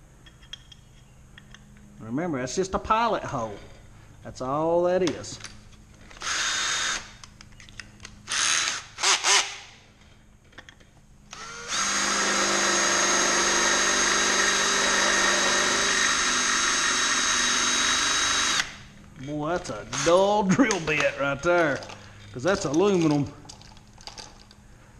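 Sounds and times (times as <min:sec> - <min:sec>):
cordless drill boring into metal: 0:06.2 - 0:07.2, 0:08.3 - 0:09.6, 0:11.3 - 0:18.8, 0:19.9 - 0:20.3.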